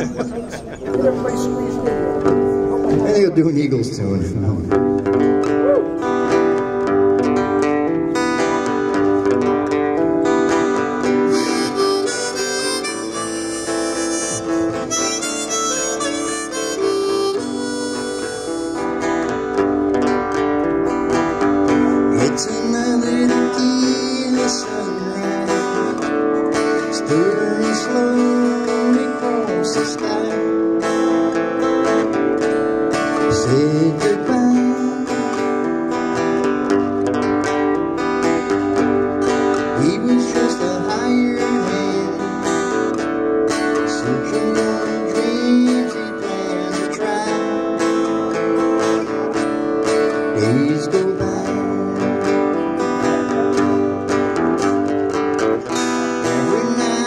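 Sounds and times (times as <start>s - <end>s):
strummed acoustic guitar: 0.0s - 57.0s
harmonica: 5.2s - 34.0s.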